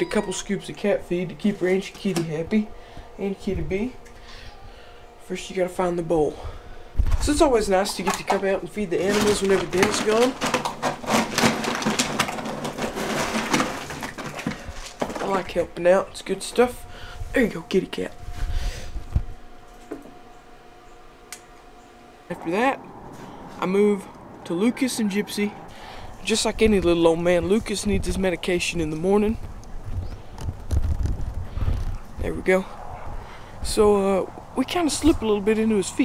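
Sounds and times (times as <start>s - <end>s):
wind buffeting microphone: 6.2s - 7.9s, 18.2s - 19.5s, 22.6s - 36.0s.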